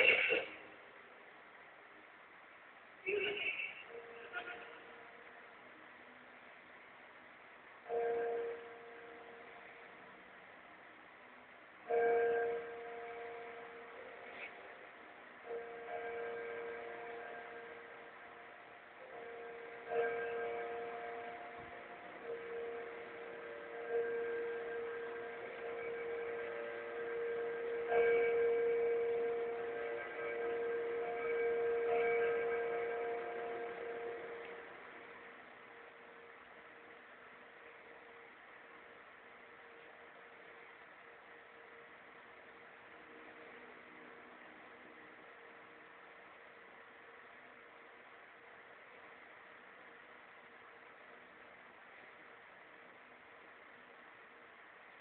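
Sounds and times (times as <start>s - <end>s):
bell-like chime: 15.5s - 35.1s.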